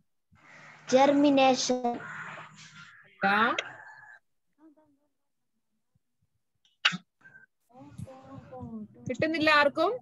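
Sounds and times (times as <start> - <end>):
children's voices: 0.8 - 3.8.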